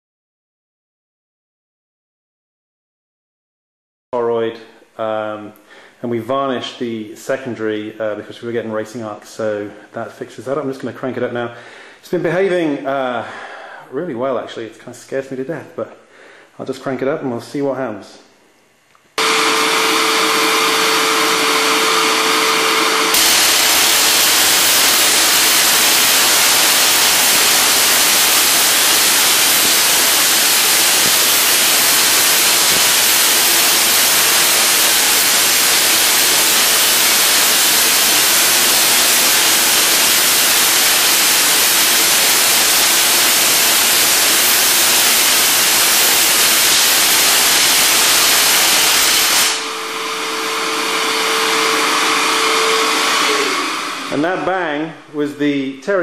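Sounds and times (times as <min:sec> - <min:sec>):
steady electrical hum: 0:04.2 - 0:19.2
crackling electric arcs: 0:23.1 - 0:49.6
tesla coil spark gap buzzing: 0:23.1 - 0:50.6.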